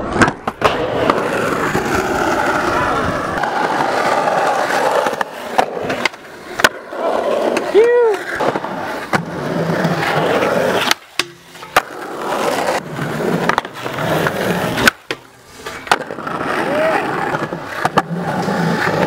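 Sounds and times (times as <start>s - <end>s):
skateboard popping and landing: 0.0s - 19.0s
skateboard wheels rolling on concrete: 0.0s - 19.0s.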